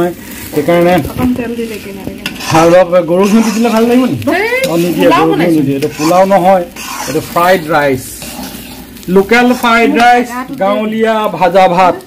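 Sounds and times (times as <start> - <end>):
person speaking: 0.0 - 8.2, 9.1 - 12.0
frying sizzle: 0.0 - 12.0
spatula scraping a pan: 0.2 - 10.3.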